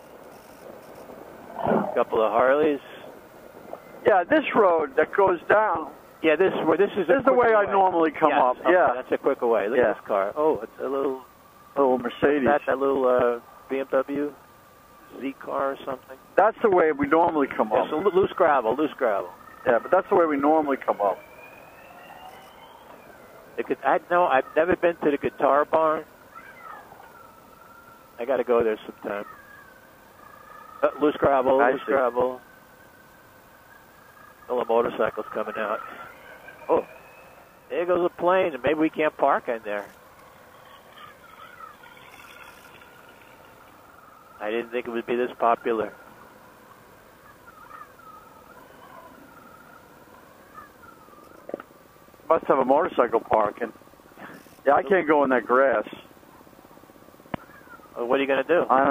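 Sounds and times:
motorcycle riding noise: 0.0s - 58.9s
thin rising whine: 0.0s - 58.9s
person speaking: 15.1s - 21.2s.

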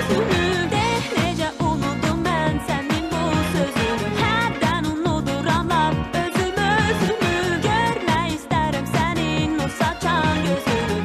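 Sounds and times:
pop backing track with beat: 0.0s - 11.0s
woman singing: 0.0s - 11.0s.

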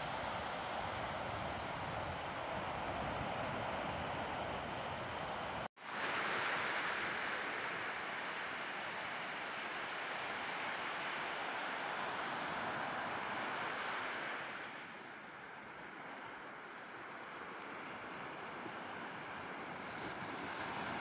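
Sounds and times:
waves washing up a beach: 0.0s - 21.0s.

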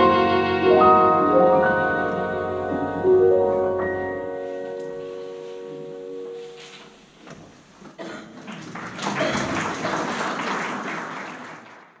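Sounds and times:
audience applauding: 8.3s - 12.0s.

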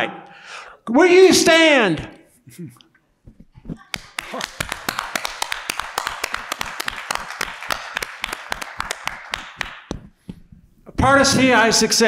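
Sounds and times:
sharp claps close to microphone: 3.8s - 10.4s
crowd applause: 3.9s - 9.8s.

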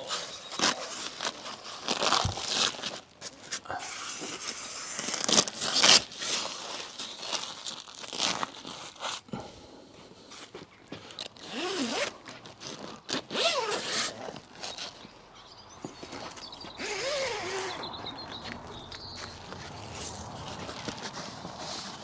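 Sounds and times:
zipper rasps: 0.0s - 3.0s, 11.4s - 15.0s, 16.7s - 17.9s
stiff plastic crinkling: 0.0s - 9.3s.

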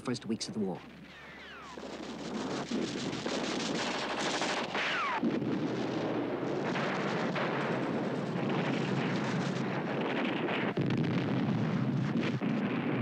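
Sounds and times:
machine-gun and rifle fire: 1.6s - 13.0s.

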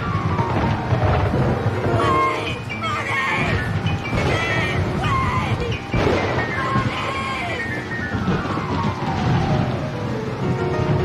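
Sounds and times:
dramatic piano music: 0.0s - 11.0s.

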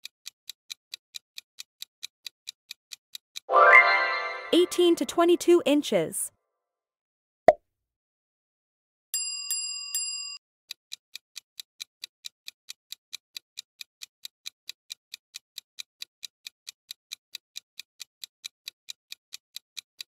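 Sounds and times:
countdown clock ticking: 2.2s - 6.1s
bright chime: 3.5s - 5.0s.

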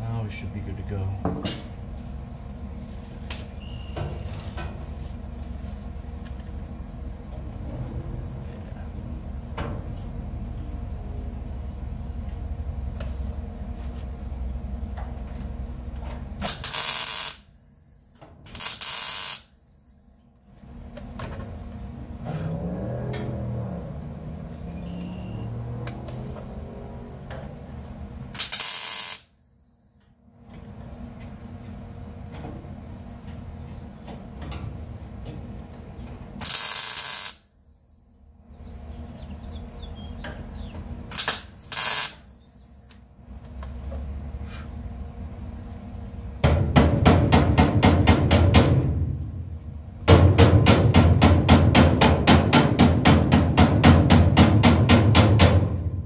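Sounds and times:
welder crackling: 16.4s - 17.5s, 18.5s - 19.6s, 28.3s - 29.4s, 36.4s - 37.5s, 41.1s - 42.6s.

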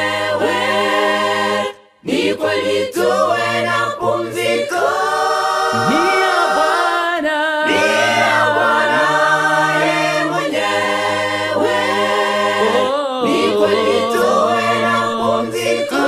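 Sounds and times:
mixed group singing a cappella: 0.0s - 16.0s.

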